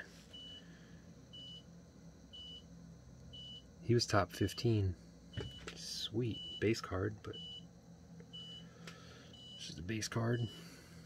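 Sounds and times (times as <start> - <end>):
low steady hum: 0.0 - 11.0
faint high electronic beeps: 6.3 - 7.7.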